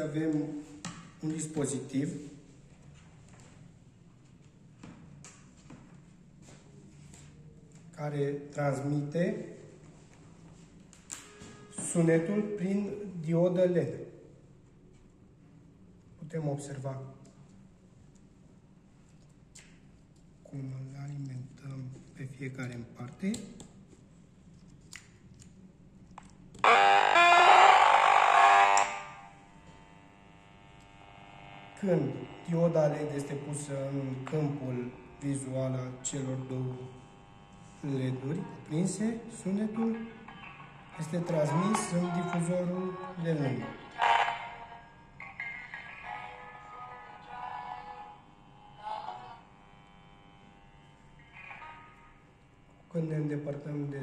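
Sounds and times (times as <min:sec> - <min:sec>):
harsh electronic buzz from speaker: 0:26.6 - 0:54.0
faint music from small speaker: 0:38.4 - 0:50.4, 0:51.2 - 0:52.6.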